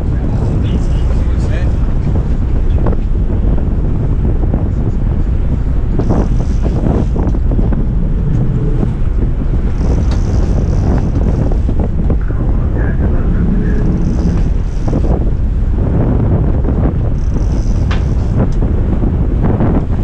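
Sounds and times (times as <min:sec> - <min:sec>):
water rushing past hull: 0:00.0 - 0:19.4
boat engine running: 0:00.0 - 0:20.0
wind buffeting microphone: 0:00.0 - 0:20.0.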